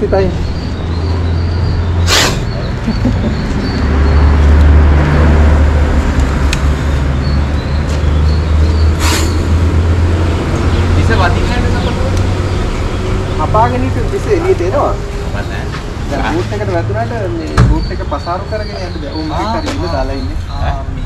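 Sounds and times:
voices: 0.0 - 5.6, 10.2 - 21.0
sharp knock: 17.6 - 17.9.

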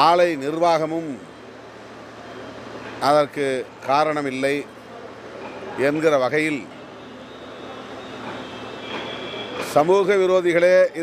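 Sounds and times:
steady background noise: 0.0 - 11.0
man speaking: 9.8 - 11.0.

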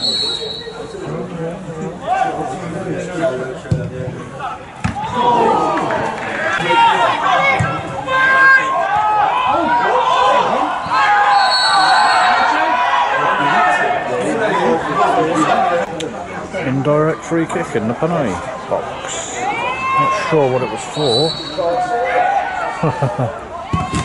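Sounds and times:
players shouting: 4.3 - 16.6, 18.8 - 24.0.

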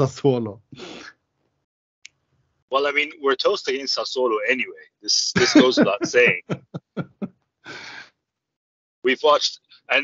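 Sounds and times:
man laughing: 5.2 - 8.0
breath in close to microphone: 7.7 - 8.1.

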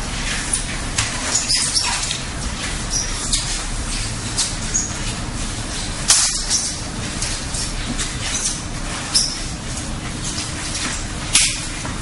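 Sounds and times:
short high squeaks: 4.4 - 5.0, 8.3 - 9.5.

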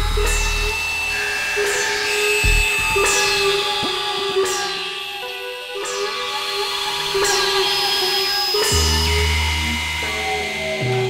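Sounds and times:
deep bass tone: 0.0 - 1.2, 2.4 - 3.6
sustained synth drone tones: 0.0 - 5.6
noisy swept hit: 2.4 - 3.9.

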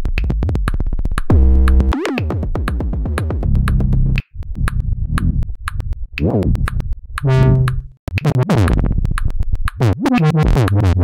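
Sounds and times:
drum-machine hi-hat ticks: 0.1 - 11.0
synth bass line: 6.2 - 8.9.

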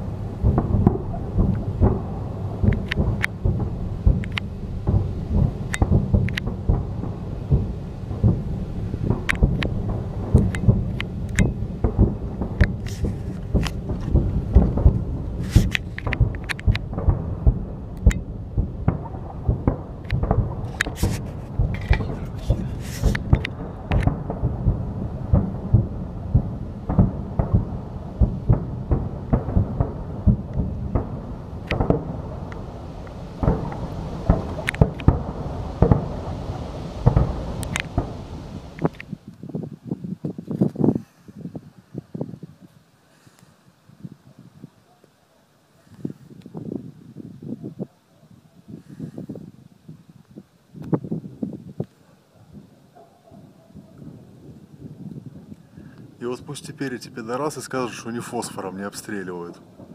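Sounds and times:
distant shelling explosions: 0.0 - 39.2, 56.0 - 59.9
sharp cracks: 0.0 - 39.4.

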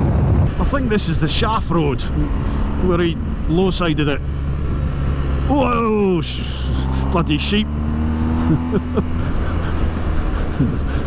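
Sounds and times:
motorcycle engine rumble: 0.0 - 11.0
rushing wind noise: 0.0 - 11.0.

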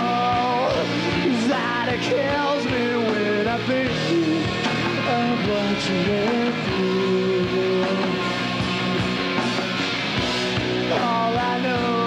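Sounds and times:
drums: 0.0 - 12.0
electric guitars: 0.0 - 12.0.

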